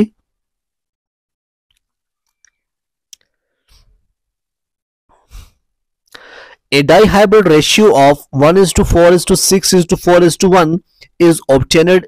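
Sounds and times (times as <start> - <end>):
short breath or sigh: 5.2 - 6.6.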